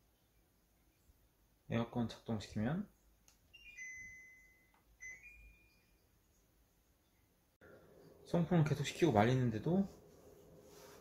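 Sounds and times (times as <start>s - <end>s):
air conditioner power-on chime: 3.5s - 6.2s.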